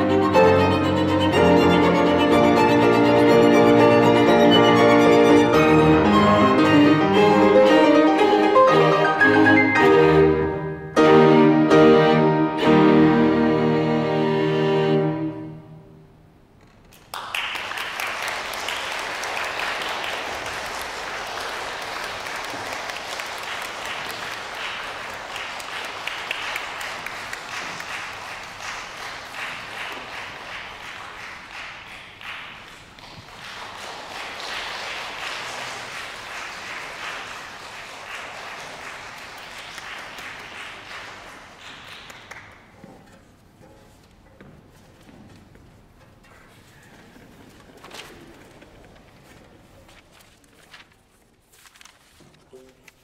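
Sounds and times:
audience applauding: 16.8s - 43.0s.

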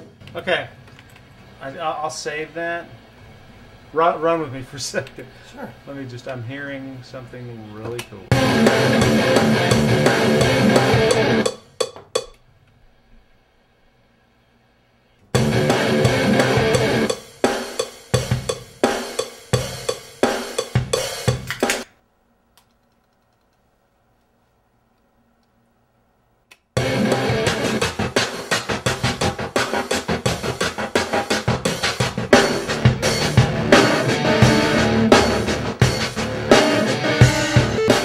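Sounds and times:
drum-heavy recorded music: 8.3s - 12.4s, 15.3s - 21.9s, 26.8s - 38.0s.

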